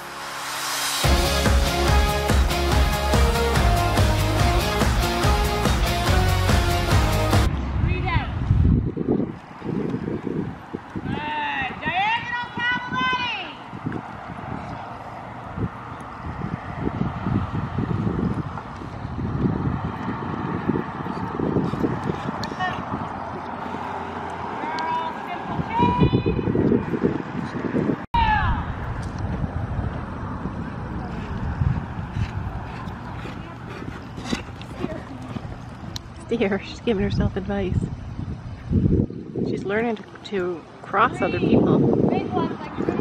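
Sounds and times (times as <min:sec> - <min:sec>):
wind buffeting microphone: 0:07.5 - 0:43.0
horse hooves thudding on sand: 0:17.6 - 0:27.8, 0:31.0 - 0:37.6.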